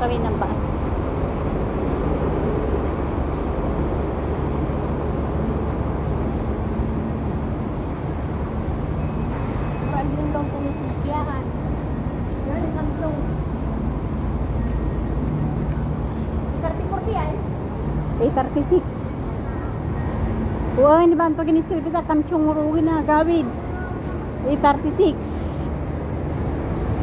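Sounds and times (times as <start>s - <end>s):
idling buses and road traffic: 0.0s - 27.0s.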